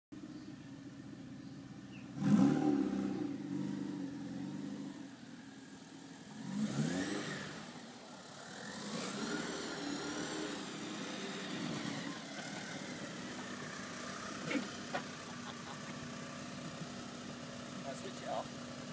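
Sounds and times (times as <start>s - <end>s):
car engine idling and revving: 0.2s - 18.9s.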